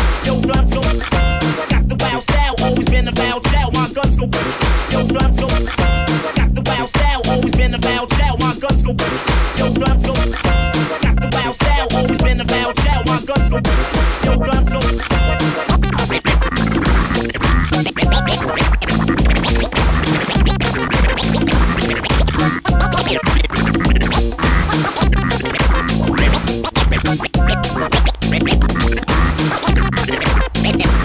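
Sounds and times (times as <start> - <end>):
bass-heavy hip hop beat: 0.0 - 31.0
turntable scratching: 0.0 - 31.0.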